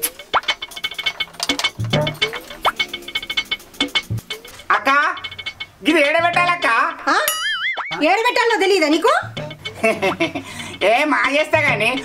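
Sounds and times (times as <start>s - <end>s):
wobbling boing tone: 1.8s - 4.3s, 6.2s - 8.4s, 9.1s - 10.2s.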